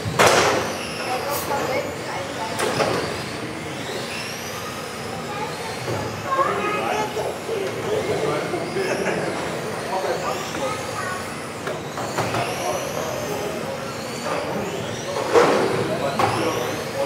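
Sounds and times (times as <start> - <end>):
rc car electric motors whining: 0.0 - 17.0
voices echoing in a hall: 0.7 - 17.0.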